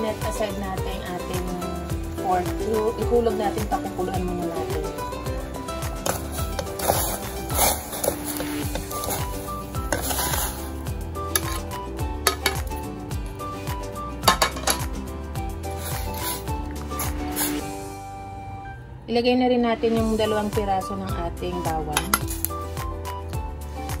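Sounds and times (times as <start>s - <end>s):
background music: 0.0s - 24.0s
spoon and plate clinking on pot: 11.4s - 12.7s, 14.2s - 14.9s, 21.9s - 22.5s.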